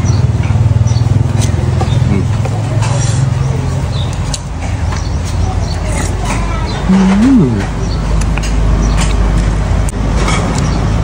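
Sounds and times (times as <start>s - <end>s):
motor vehicle running nearby: 0.0s - 6.2s
road traffic rumble: 0.0s - 11.0s.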